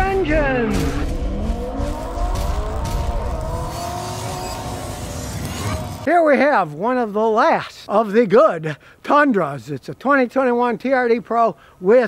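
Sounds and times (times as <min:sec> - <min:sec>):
car engine revving: 0:00.3 - 0:06.1.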